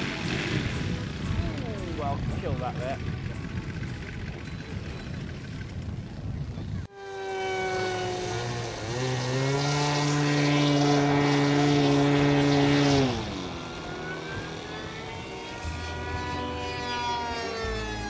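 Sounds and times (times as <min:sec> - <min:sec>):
model aircraft engine revving: 0:00.0 - 0:06.0, 0:06.7 - 0:18.0
faint engine note rising and falling: 0:00.0 - 0:18.0.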